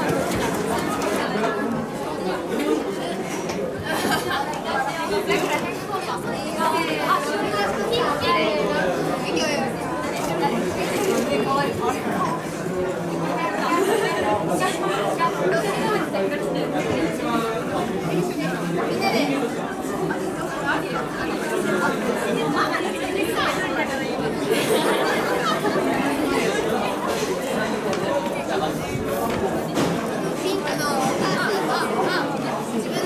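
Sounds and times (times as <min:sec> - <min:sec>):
girls chattering: 0:00.0 - 0:33.0.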